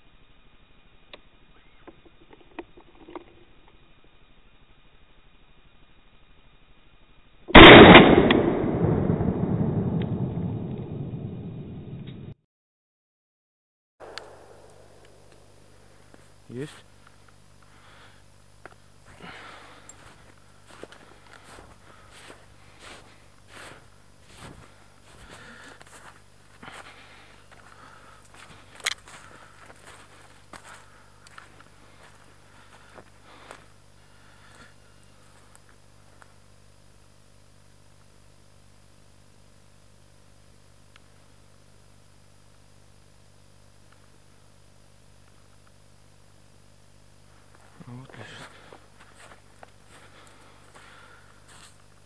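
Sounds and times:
footsteps crunching on forest litter: 0:15.1 - 0:36.2, 0:47.3 - 0:52.0
person speaking: 0:16.5 - 0:16.9, 0:47.8 - 0:48.7.

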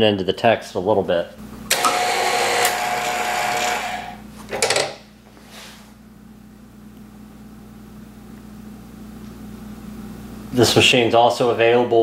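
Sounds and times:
machine motor whirring: 0:01.7 - 0:04.2.

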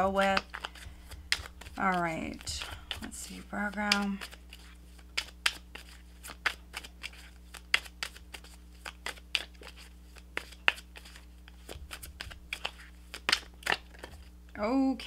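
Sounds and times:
cards being shuffled: 0:00.0 - 0:14.3.

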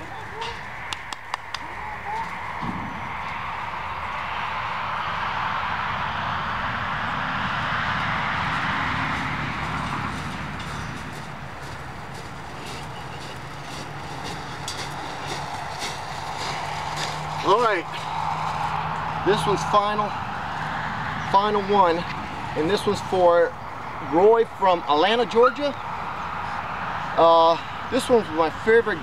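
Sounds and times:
vehicle passing: 0:00.0 - 0:29.0
footsteps on gravel: 0:08.3 - 0:19.8.

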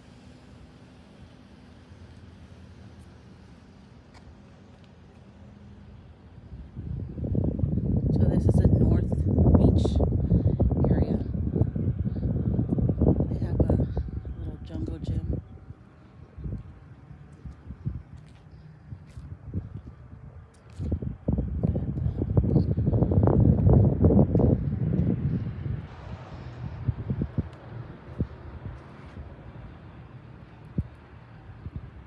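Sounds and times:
wind buffeting microphone: 0:06.1 - 0:32.0.

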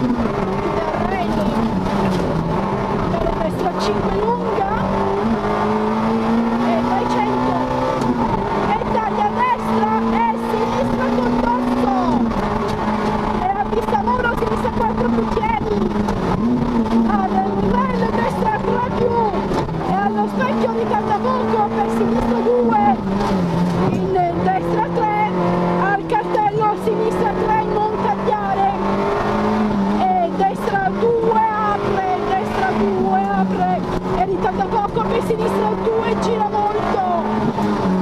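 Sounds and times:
rally car engine revving: 0:00.0 - 0:38.0.

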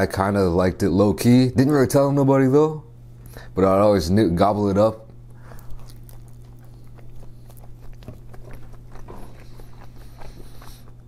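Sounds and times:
steady low hum: 0:00.0 - 0:11.0
wet chewing mouth clicks: 0:05.2 - 0:11.0.

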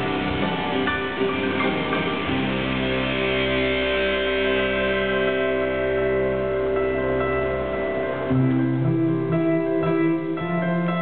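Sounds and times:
rock band holding a chord: 0:00.0 - 0:10.9.

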